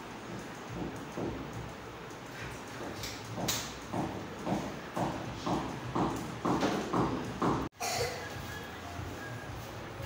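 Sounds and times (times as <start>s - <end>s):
regular knocking beats: 0.2s - 1.8s, 2.8s - 7.7s.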